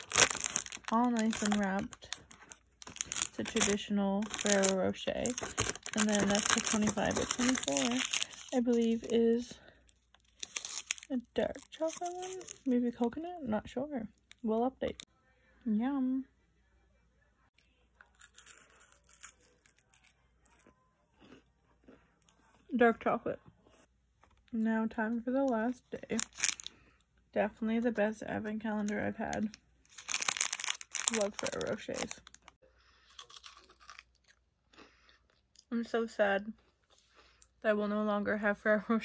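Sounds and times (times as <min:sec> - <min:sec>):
plastic wrapper crinkling: 0:00.0 - 0:13.2, 0:26.0 - 0:26.8, 0:28.7 - 0:32.6
chocolate crunching when chewed: 0:18.0 - 0:22.5, 0:29.9 - 0:34.4.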